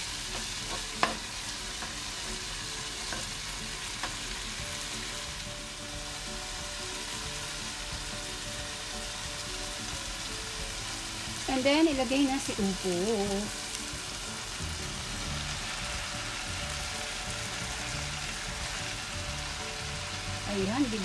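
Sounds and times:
food sizzling in a pan: 0.0s - 21.0s
spatula tapping pan: 0.3s - 2.0s, 3.0s - 4.3s.

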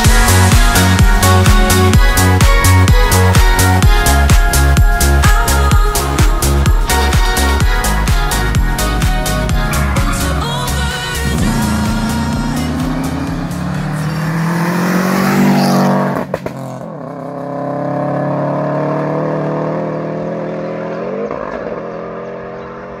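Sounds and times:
pop song beat: 0.0s - 16.3s
rally car engine revving: 9.3s - 23.0s.

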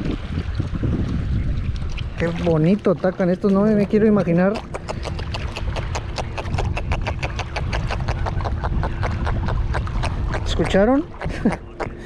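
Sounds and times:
fish making rapid clicks: 4.5s - 10.5s.

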